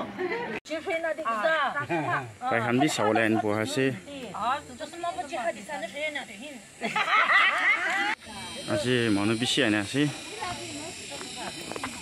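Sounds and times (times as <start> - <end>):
people talking: 0.7 - 12.0.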